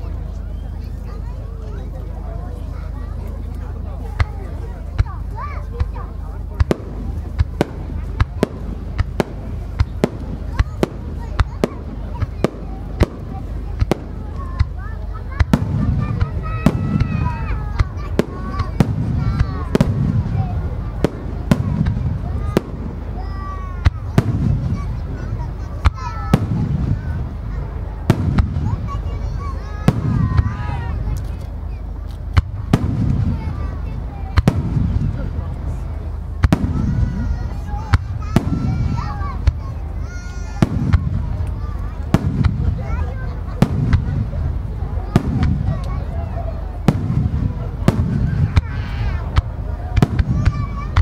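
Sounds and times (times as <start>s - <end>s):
low firework booms: 4.0s - 51.0s.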